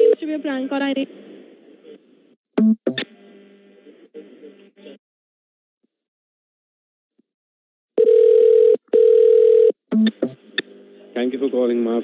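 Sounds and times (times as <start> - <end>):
telephone ringing tone: 8.0 - 9.8.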